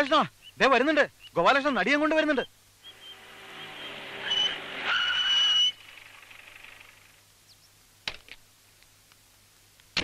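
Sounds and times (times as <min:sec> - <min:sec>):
brakes squealing: 0:02.8 - 0:06.9
vehicle engine: 0:02.9 - 0:07.2.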